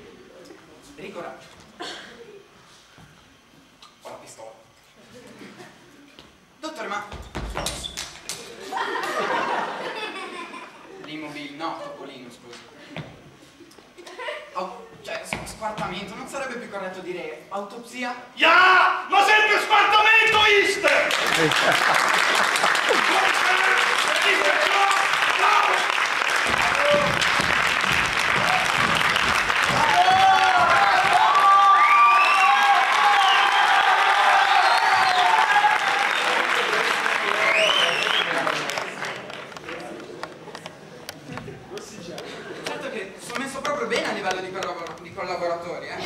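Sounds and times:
faint audience murmur: 0:04.9 - 0:06.6, 0:38.5 - 0:43.4
audience applause: 0:20.8 - 0:40.0
loud yelling voices: 0:22.9 - 0:27.2, 0:29.7 - 0:36.5.

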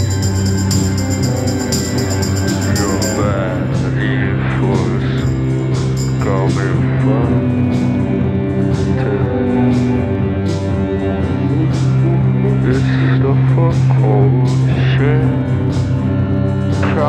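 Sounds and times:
drum-machine beat: 0:00.0 - 0:03.5
person singing: 0:00.0 - 0:15.6
electric bass line: 0:00.0 - 0:17.0.

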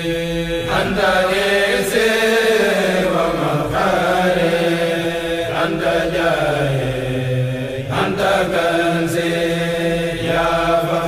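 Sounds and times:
voices chanting: 0:00.0 - 0:11.0.

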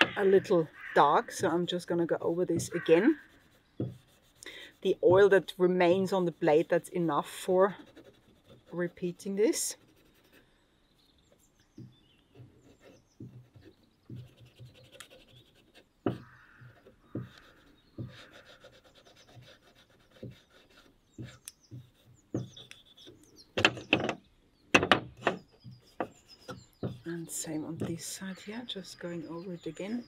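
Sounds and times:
birds chirping faintly: 0:00.0 - 0:30.0.

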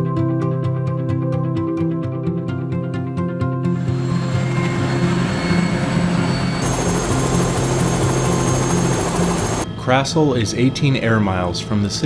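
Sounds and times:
fast pulsing: 0:03.8 - 0:09.7
high whine: 0:03.8 - 0:09.7
helicopter engine and rotor noise: 0:03.8 - 0:09.8.

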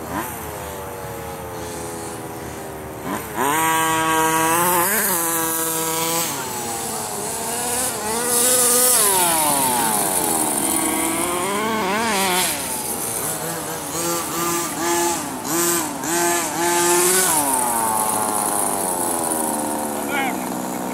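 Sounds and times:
small two-stroke engine revving: 0:00.0 - 0:20.9.

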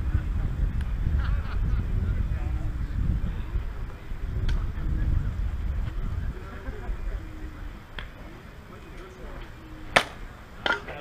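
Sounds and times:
bat hitting softball: 0:09.9 - 0:11.0.

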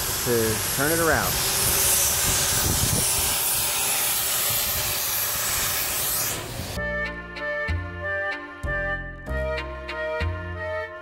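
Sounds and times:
steam locomotive venting steam hiss: 0:00.0 - 0:06.8.

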